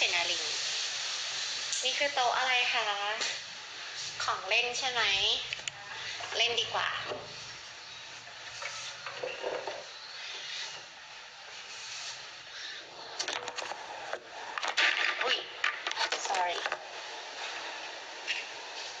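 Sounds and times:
woman's voice: 0.0s - 0.6s, 1.8s - 3.4s, 4.2s - 7.2s, 15.1s - 16.8s.

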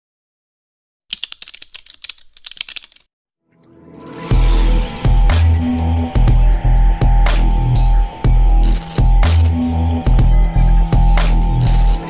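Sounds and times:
keyboard typing clicks: 1.1s - 3.8s
music: 3.4s - 12.0s.

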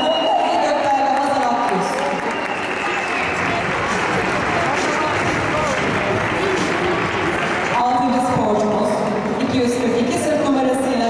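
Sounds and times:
audience applause: 0.0s - 9.3s.

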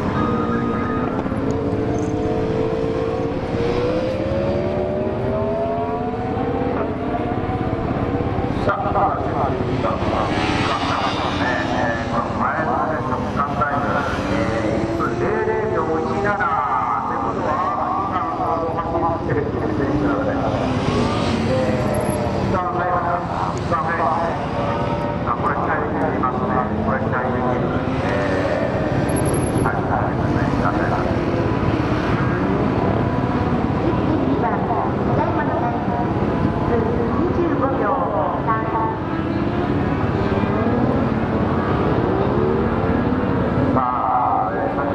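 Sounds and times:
motorcycle engine revving: 0.0s - 16.4s.

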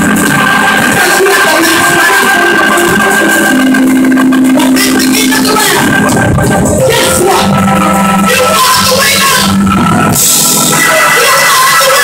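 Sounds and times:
live worship music: 0.0s - 12.0s.

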